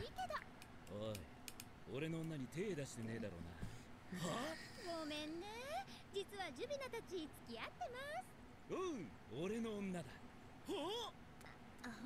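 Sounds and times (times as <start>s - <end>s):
sharp clicks: 0.6s - 2.4s.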